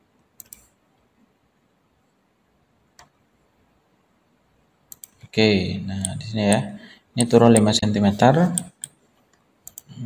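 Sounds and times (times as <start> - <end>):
computer mouse clicks: 0.4 - 0.8, 2.9 - 3.2, 4.9 - 5.3, 8.4 - 10.0
man speaking: 5.3 - 8.8.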